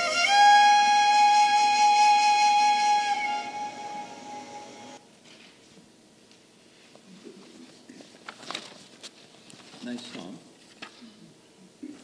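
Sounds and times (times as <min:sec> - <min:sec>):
held flute note: 0:00.0 - 0:05.0.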